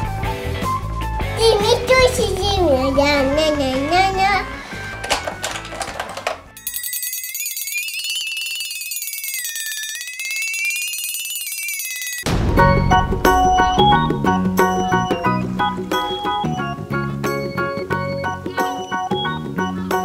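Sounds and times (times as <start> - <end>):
children's background music: 0.0 - 6.6, 11.7 - 20.0
child's voice: 1.4 - 4.6
high trilling shimmer effect: 6.6 - 16.8.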